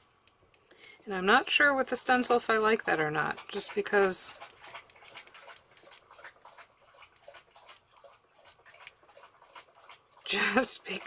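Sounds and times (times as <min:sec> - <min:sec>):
dog lapping water: 0:01.3 - 0:11.0.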